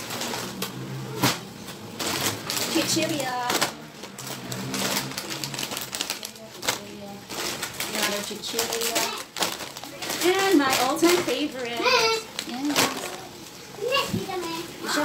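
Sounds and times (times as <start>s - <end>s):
plastic snack packets rustling: 0.0s - 15.0s.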